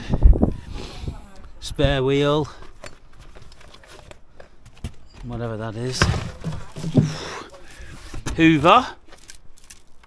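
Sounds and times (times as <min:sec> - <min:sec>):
plastic tray rustling: 0:05.8 - 0:10.0.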